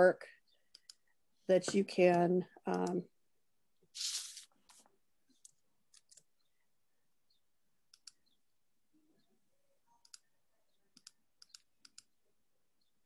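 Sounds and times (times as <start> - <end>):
computer mouse clicking: 0.7 - 1.0, 2.0 - 3.0, 5.4 - 6.3, 7.9 - 8.4, 10.0 - 10.3, 10.9 - 12.1.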